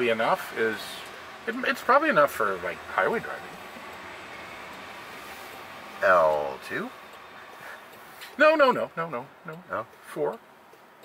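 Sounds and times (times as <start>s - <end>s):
tyre and road noise: 0.0s - 11.0s.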